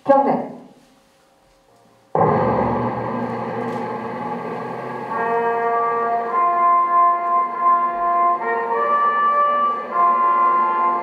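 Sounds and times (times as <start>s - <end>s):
loud ringing orchestral chord: 2.2s - 11.0s
sustained string and brass notes: 2.2s - 11.0s
solemn orchestral music: 2.3s - 11.0s.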